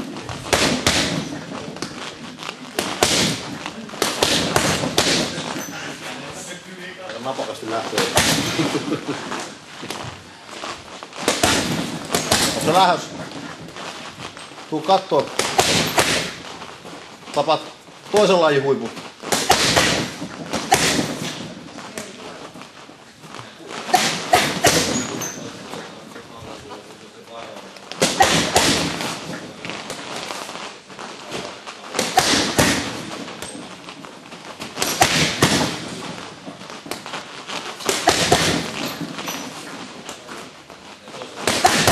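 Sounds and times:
boxing gloves punching heavy bag: 0.0 - 6.0, 7.9 - 9.0, 11.0 - 18.5, 19.1 - 22.4, 23.8 - 26.0, 28.0 - 30.4, 31.8 - 40.4, 41.4 - 41.9
feet shuffling on a mat: 0.0 - 41.9.

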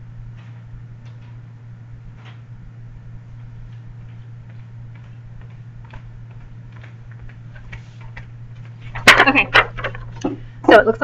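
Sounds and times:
low electrical hum: 0.0 - 11.0
faint ticks and taps: 3.7 - 8.8.

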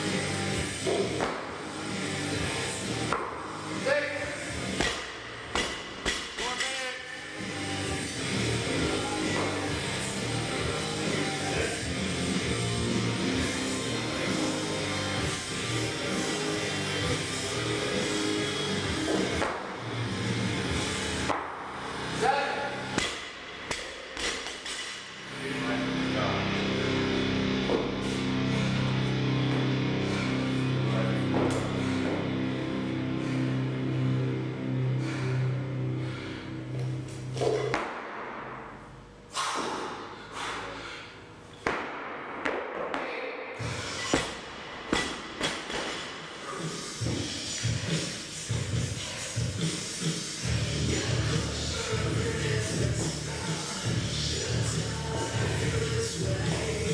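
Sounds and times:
music playing: 0.0 - 23.2, 24.1 - 37.7, 43.6 - 56.9.

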